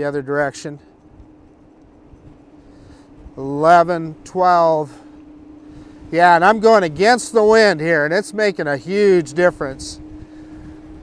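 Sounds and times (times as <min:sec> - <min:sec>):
electric motor hum: 0:00.0 - 0:11.0
muffled wind: 0:00.0 - 0:11.0.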